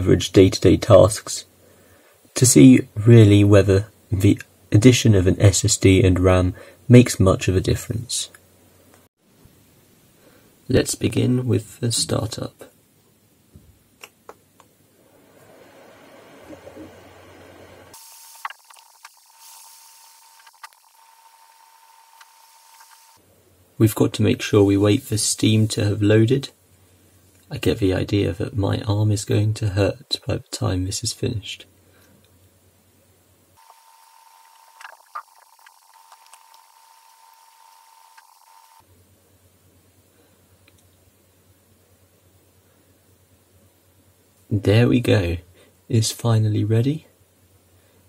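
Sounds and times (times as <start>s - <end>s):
faint hiss: 0.0s - 48.0s
laptop hard drive whine: 15.0s - 23.2s, 33.6s - 38.9s.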